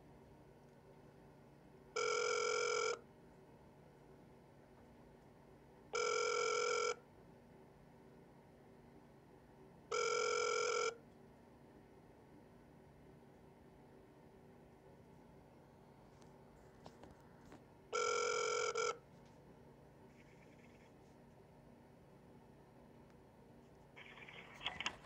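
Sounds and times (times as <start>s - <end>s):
electronic phone beep: 2.0s - 3.0s, 6.0s - 7.0s, 9.9s - 11.0s, 18.0s - 19.0s, 24.0s - 25.0s.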